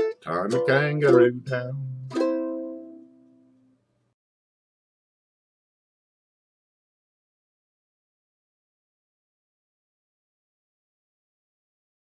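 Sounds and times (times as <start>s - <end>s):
ukulele chord strummed: 0.0s - 3.7s.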